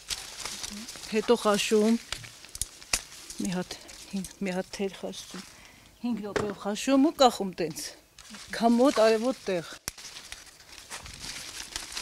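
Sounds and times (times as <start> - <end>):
leaves and branches rustling: 0.0 - 12.0
person speaking: 0.6 - 2.1, 3.4 - 9.8.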